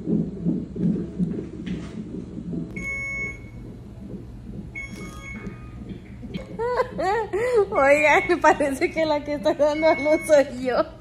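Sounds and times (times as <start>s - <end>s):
fetal heartbeat on doppler: 0.0s - 11.0s.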